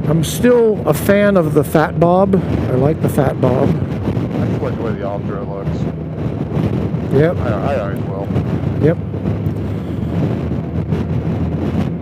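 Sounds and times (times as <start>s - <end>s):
engine and road noise drone: 0.0s - 12.0s
wind rushing over microphone: 0.0s - 12.0s.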